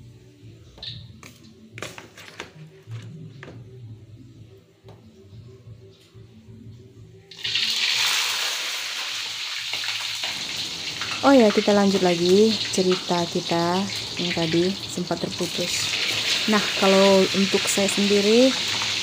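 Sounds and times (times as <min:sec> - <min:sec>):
eggplant sizzling in hot oil: 0:07.3 - 0:19.0.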